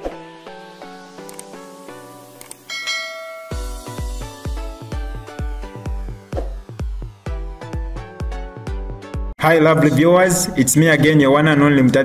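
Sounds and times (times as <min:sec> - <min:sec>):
intro music: 0:00.2 - 0:11.2
mouse-click sound effects: 0:01.2 - 0:01.6, 0:02.4 - 0:02.7
notification bell chime: 0:02.7 - 0:04.2
electronic beat with bass kicks: 0:03.5 - 0:09.1.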